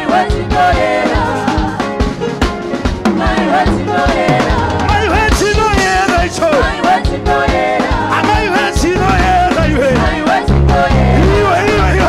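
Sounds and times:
kick and snare drum beat: 0.0s - 12.0s
live band music: 0.0s - 12.0s.

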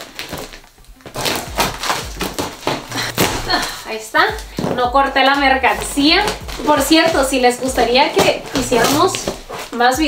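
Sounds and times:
cardboard and plastic tearing: 0.0s - 4.8s, 5.7s - 10.0s.

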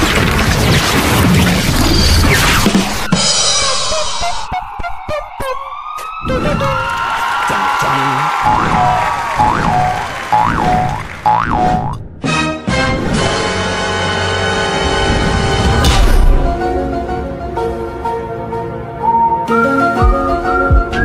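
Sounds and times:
music: 0.1s - 7.1s, 8.4s - 21.0s.

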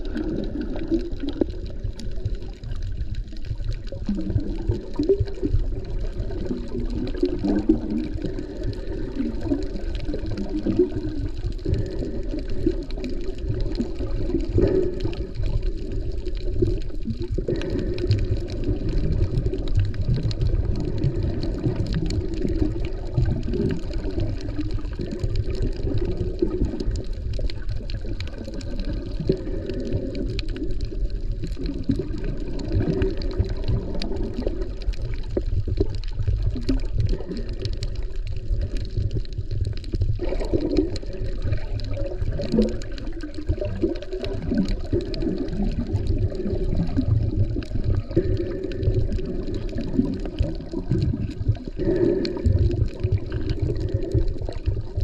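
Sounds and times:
faint underwater clicks: 0.0s - 55.0s
muffled underwater churning: 0.0s - 55.0s.

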